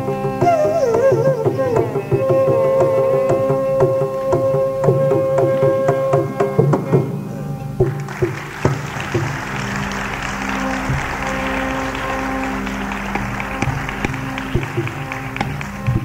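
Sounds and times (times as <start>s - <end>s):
bamboo flute held notes: 0.0s - 7.1s, 9.0s - 16.0s
drum strokes: 7.8s - 16.0s
audience applause: 7.9s - 16.0s.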